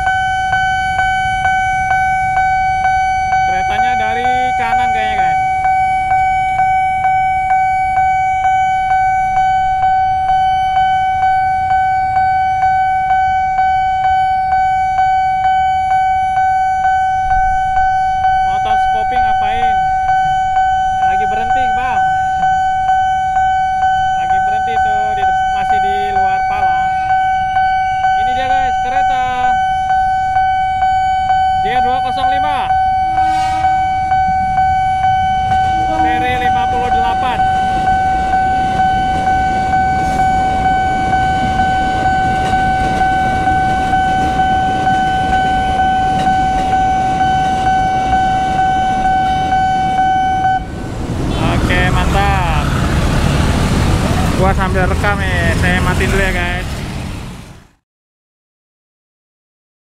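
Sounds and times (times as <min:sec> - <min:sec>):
level crossing alarm pulsing: 0:00.0 - 0:56.7
train wheels rumbling on rails: 0:31.6 - 0:57.7.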